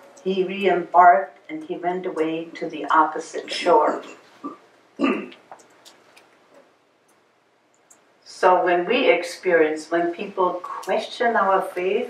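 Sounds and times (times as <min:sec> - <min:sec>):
person coughing: 0:03.5 - 0:05.4
throat sound: 0:04.4 - 0:05.4.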